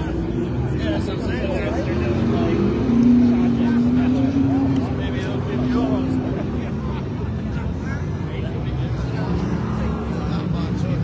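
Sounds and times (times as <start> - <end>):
race car engines running: 0.0 - 11.0.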